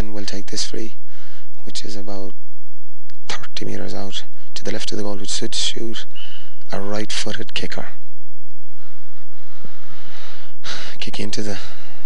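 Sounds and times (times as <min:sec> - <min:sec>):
man speaking: 0:00.0 - 0:01.0, 0:01.6 - 0:02.4, 0:03.2 - 0:08.0, 0:10.7 - 0:11.8
faint steady hiss: 0:00.0 - 0:12.0
man's sharp intake of breath: 0:08.8 - 0:11.0.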